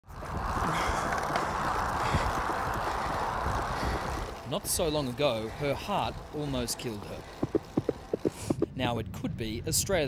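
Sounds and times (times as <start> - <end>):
bicycle tyres rolling on asphalt: 0.0 - 10.0
wind rushing: 0.1 - 4.8, 7.2 - 9.4.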